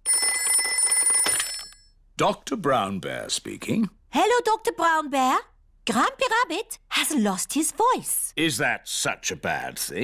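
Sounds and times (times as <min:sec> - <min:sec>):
old telephone bell ringing: 0:00.0 - 0:02.0.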